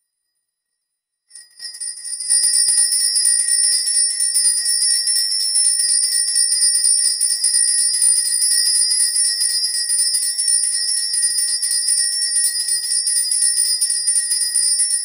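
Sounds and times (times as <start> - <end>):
small bells jingling: 1.3 - 15.0.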